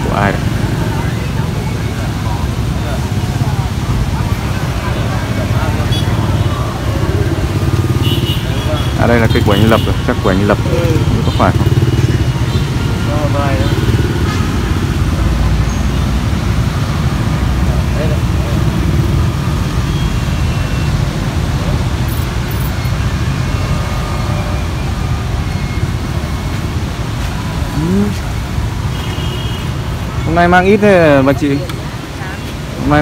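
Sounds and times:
motorbike engines: 0.0s - 33.0s
street traffic rumble: 0.0s - 33.0s.

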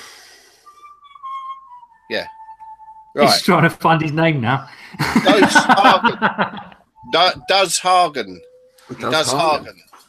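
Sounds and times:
breathy hiss: 0.0s - 0.8s
long thin whistle: 0.0s - 3.2s, 7.0s - 9.6s.

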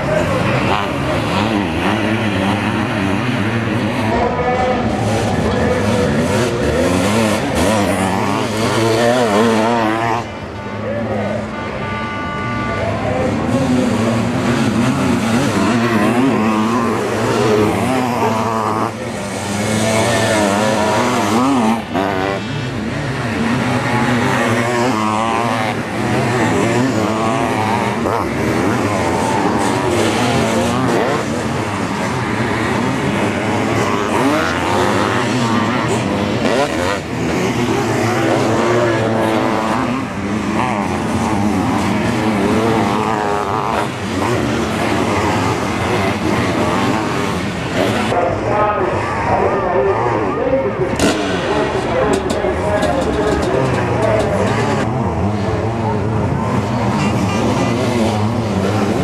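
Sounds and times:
motocross engines revving: 0.0s - 59.0s.

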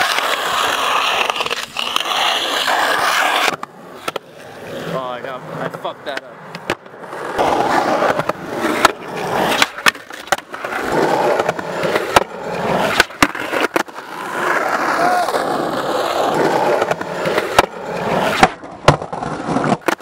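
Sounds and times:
skateboard clacking on concrete: 0.0s - 4.6s, 5.7s - 20.0s
skateboard wheels rolling on concrete: 0.0s - 20.0s.

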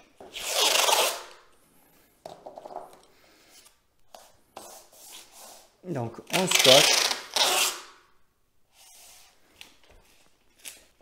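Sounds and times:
masking tape unrolling rasp: 0.3s - 1.4s, 6.3s - 8.0s
tape rubbing on paper: 0.3s - 1.4s, 3.5s - 8.0s.

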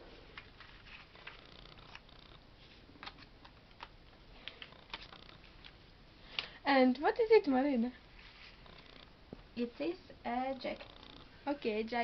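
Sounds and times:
paper rustling: 0.3s - 2.0s, 2.6s - 5.8s.

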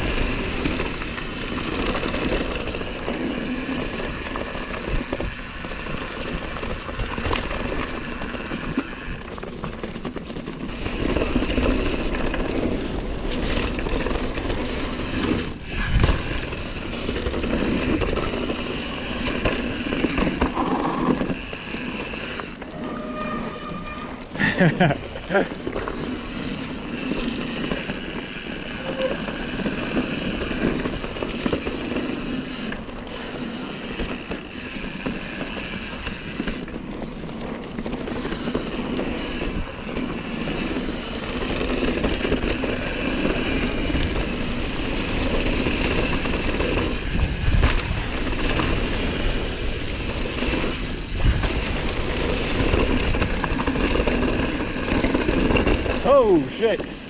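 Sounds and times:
bike rattling over bumps: 0.0s - 57.0s
bike tyres rolling over dirt: 0.0s - 57.0s
wind on microphone: 46.9s - 56.0s.

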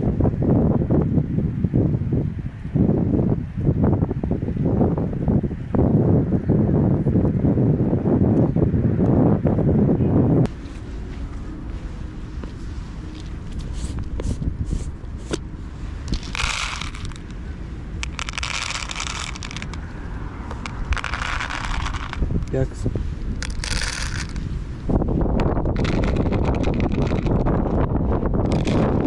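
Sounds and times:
wind buffeting microphone: 0.0s - 29.0s
cat kibble poured into plastic tubs: 23.4s - 24.4s.

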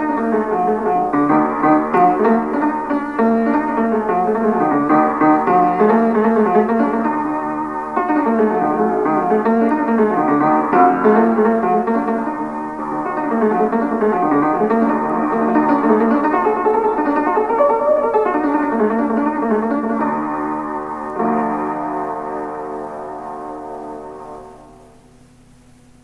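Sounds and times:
piano melody: 0.0s - 26.0s.

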